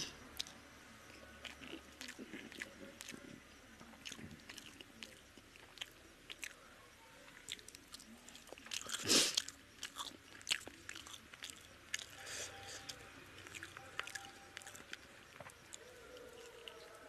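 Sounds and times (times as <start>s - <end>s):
wet chewing: 0.4s - 6.6s, 7.3s - 17.0s.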